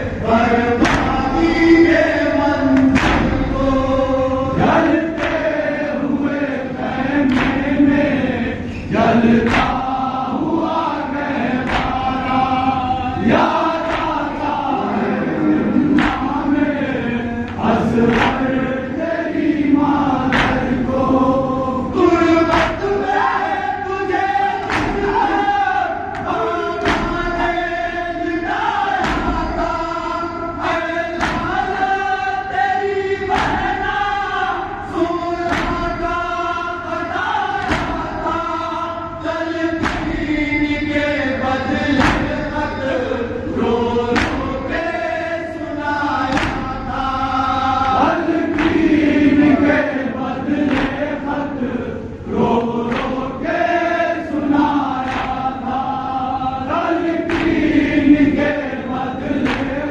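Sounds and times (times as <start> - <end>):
men chanting a lament: 0.0 - 59.9
hands slapping chests: 0.8 - 1.2, 2.8 - 3.5, 5.2 - 5.5, 7.2 - 7.7, 9.4 - 9.8, 11.6 - 12.1, 13.7 - 14.3, 15.9 - 16.4, 17.5 - 18.5, 20.3 - 20.8, 22.5 - 22.8, 24.6 - 25.2, 26.1 - 27.2, 29.0 - 29.4, 31.2 - 31.6, 33.3 - 33.8, 35.5 - 35.9, 37.6 - 38.0, 39.8 - 40.2, 42.0 - 42.4, 44.1 - 44.6, 46.3 - 46.7, 48.5 - 49.0, 50.7 - 51.0, 52.9 - 53.2, 55.0 - 55.5, 57.3 - 57.7, 59.4 - 59.8.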